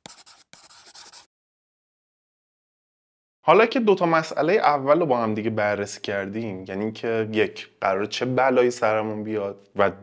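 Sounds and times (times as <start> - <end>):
pen scratching on paper: 0.0 - 1.3.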